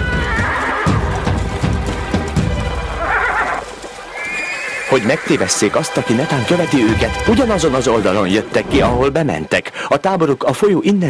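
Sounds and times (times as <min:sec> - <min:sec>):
cartoon horses neighing: 0:00.0 - 0:01.1, 0:03.0 - 0:05.6
hoofbeats: 0:00.0 - 0:08.9
background music: 0:00.0 - 0:11.0.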